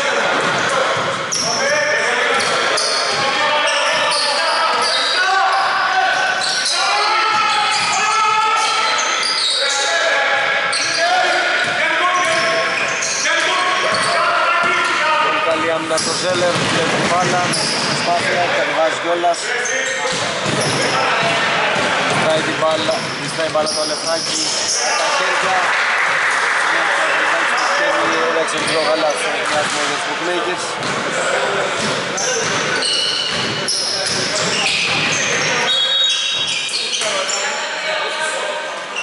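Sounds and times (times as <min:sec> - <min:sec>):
voices calling out: 0:00.0 - 0:37.8.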